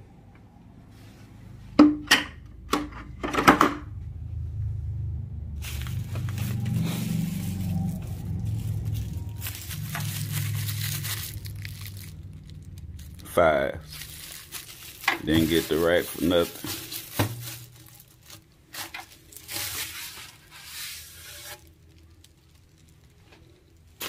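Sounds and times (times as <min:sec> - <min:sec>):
plastic wrapping crinkling: 0:05.6 - 0:24.0.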